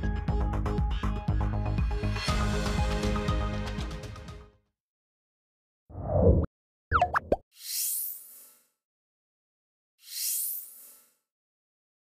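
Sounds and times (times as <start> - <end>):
electronic pitched blips: 6.9 - 7.4.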